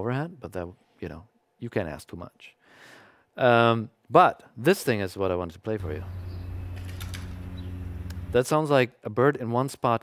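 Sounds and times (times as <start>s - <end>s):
low hum: 5.8s - 8.4s.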